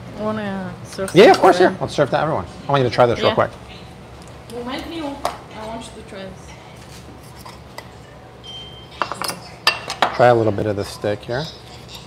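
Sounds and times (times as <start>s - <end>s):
cutlery clinking on a plate: 7.4s - 10.3s.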